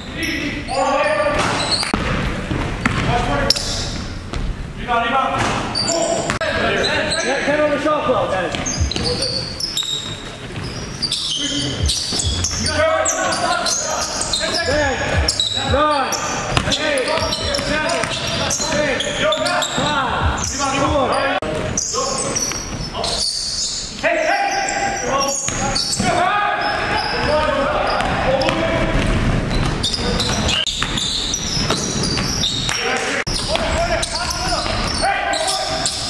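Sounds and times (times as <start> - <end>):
sneakers squeaking: 0.0 - 36.0
basketball thumping on hardwood: 1.9 - 3.2.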